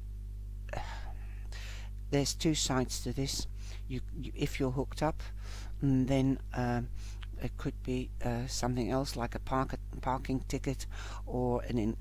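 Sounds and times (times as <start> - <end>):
low electrical hum: 0.0 - 12.0
breathy intake of breath: 0.7 - 2.0, 5.3 - 5.8, 10.9 - 11.3.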